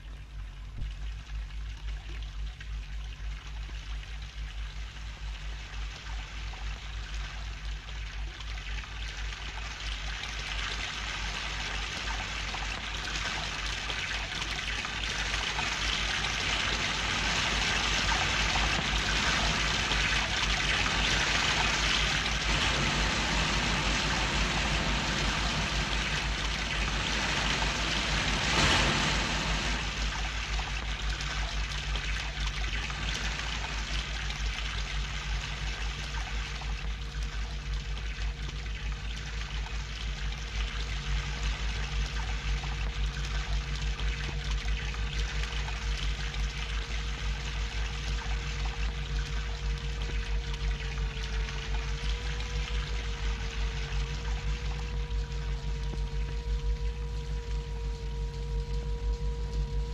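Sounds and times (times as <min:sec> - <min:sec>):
low hum: 0:00.0 - 0:59.9
stream rushing over rapids: 0:21.2 - 0:30.3.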